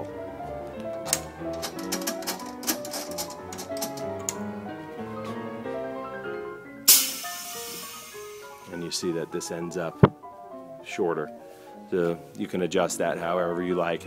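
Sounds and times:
background music: 0.0s - 14.0s
pneumatic air hiss: 6.9s - 8.6s.

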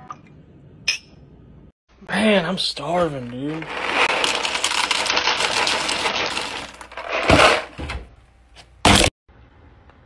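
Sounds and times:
coins pouring into bowl: 3.7s - 7.1s.

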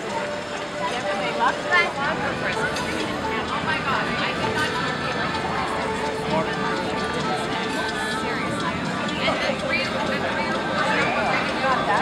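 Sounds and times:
many diners talking: 0.0s - 12.0s.

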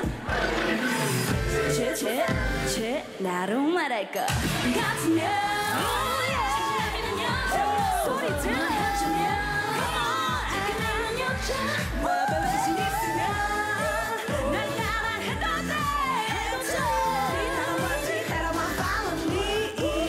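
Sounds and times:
women singing into microphones: 0.0s - 20.0s
pop backing track: 4.1s - 20.0s.

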